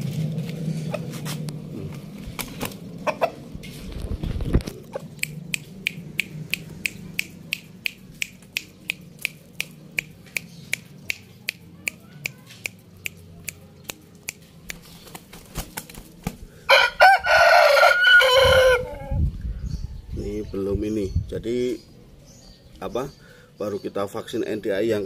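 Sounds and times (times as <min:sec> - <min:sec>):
rooster clucking: 0:00.8 - 0:09.0, 0:16.7 - 0:19.2.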